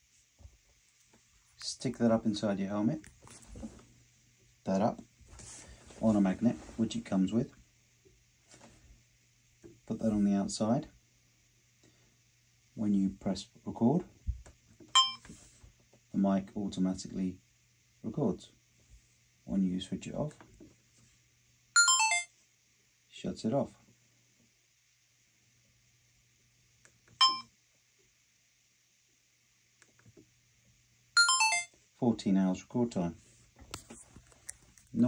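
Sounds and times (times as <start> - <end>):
falling electronic beeps: 21.8 - 22.3, 27.2 - 27.4, 31.2 - 31.7
camera electronic beep: 27.2 - 27.4.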